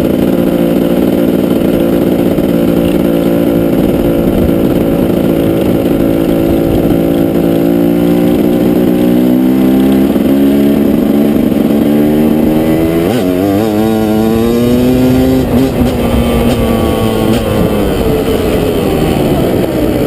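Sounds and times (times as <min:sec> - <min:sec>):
two-stroke dirt bike engine revving: 0:00.0 - 0:20.0.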